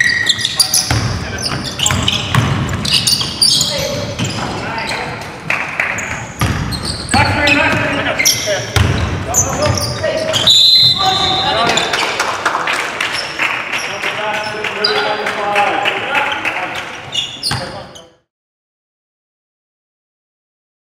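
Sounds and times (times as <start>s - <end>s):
basketball bouncing on hardwood: 1.9s - 2.9s, 6.4s - 7.9s, 8.8s - 10.5s
players shouting: 6.8s - 11.9s
referee's whistle blast: 10.3s - 11.7s.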